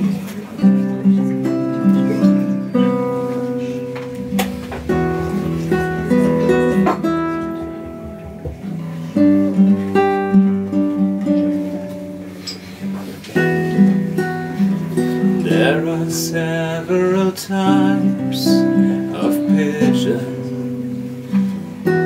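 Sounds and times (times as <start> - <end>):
classical guitar picking: 0.0 - 22.0
live band music: 2.8 - 15.4.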